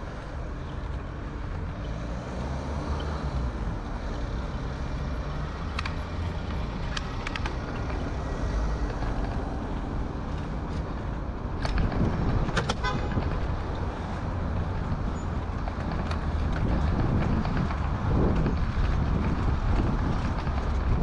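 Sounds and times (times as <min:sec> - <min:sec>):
bicycle road noise: 0:00.0 - 0:21.0
wind noise: 0:06.8 - 0:21.0.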